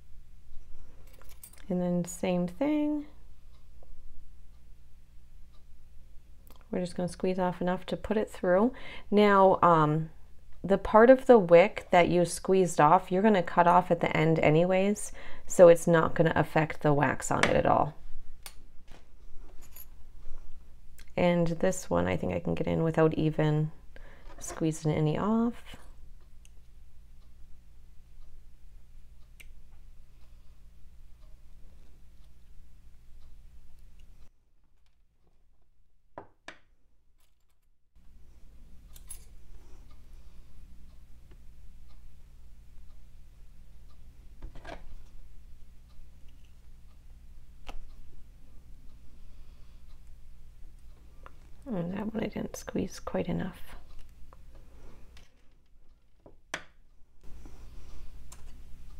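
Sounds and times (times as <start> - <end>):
low steady hum: 0.0 - 58.9.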